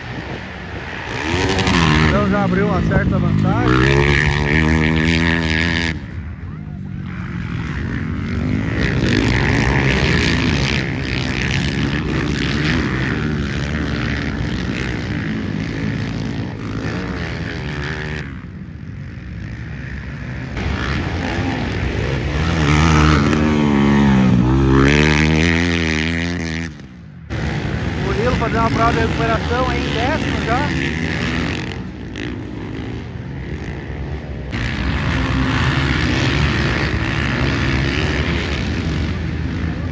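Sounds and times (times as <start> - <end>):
dirt bike engines revving: 0.0 - 39.9.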